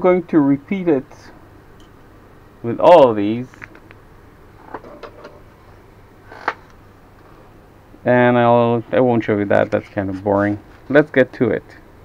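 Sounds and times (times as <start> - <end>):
low room noise: 0.0 - 12.0.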